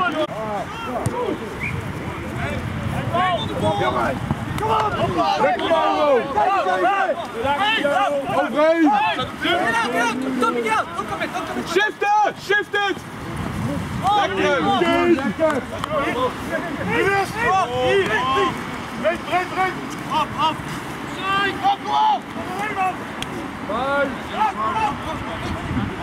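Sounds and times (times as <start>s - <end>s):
players shouting calls: 0.0s - 26.0s.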